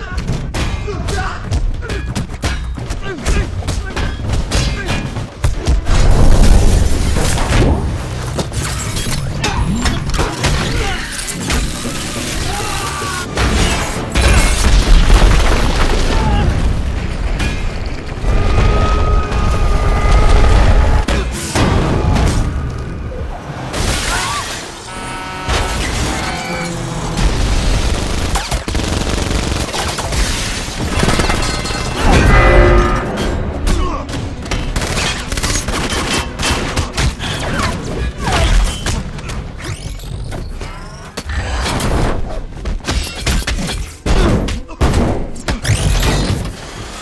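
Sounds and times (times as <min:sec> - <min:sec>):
rapid gunshots: 0:27.2 - 0:32.0, 0:33.8 - 0:37.8.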